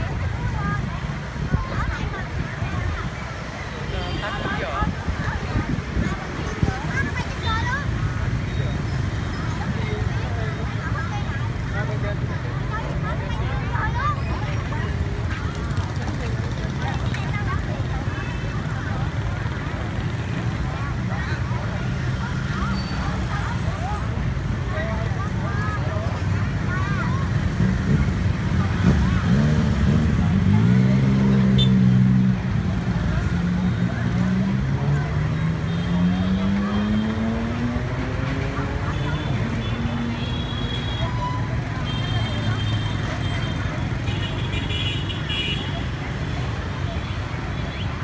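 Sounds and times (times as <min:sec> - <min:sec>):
motorbikes passing: 0:00.0 - 0:48.0
people's voices: 0:00.0 - 0:48.0
motorbike engine accelerating: 0:27.4 - 0:40.2.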